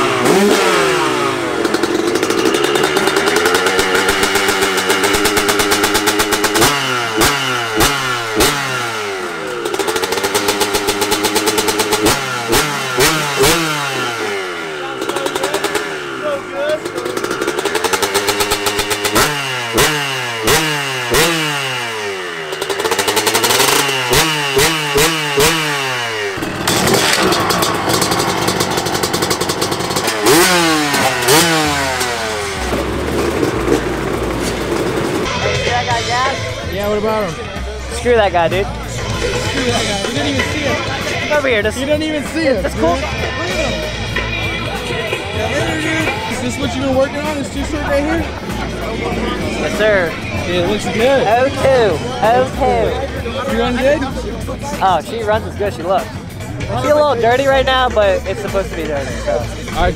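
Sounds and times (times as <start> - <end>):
dirt bike engines revving: 0.0 - 59.9
engine idling: 0.0 - 59.9.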